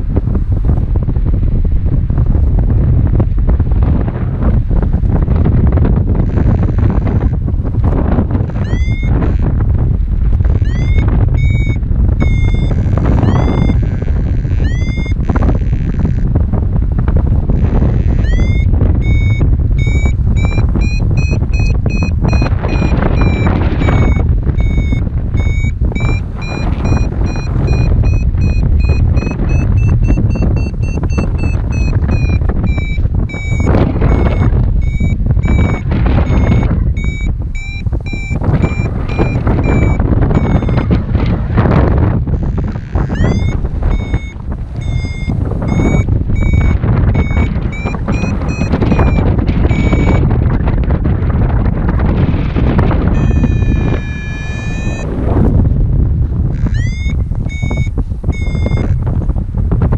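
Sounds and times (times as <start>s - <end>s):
wind rush on microphone: 0.0s - 59.9s
variometer beeping: 8.0s - 9.5s, 10.4s - 16.2s, 17.6s - 41.3s, 42.4s - 50.3s, 52.9s - 55.3s, 56.6s - 59.0s.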